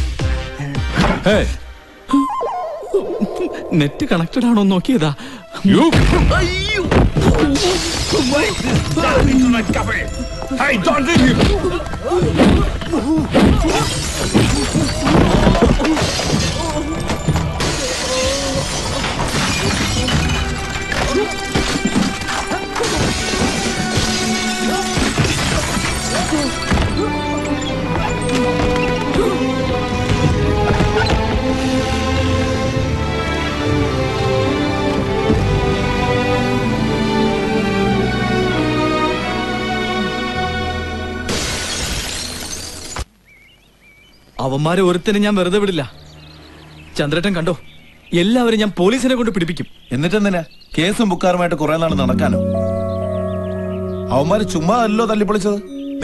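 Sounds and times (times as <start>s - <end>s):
music: 0.0s - 41.5s, 51.8s - 56.0s
debris scattering: 12.4s - 29.2s, 41.3s - 43.1s
objects crashing and shattering: 13.4s - 29.1s, 41.3s - 43.1s
loud music score: 51.9s - 55.8s.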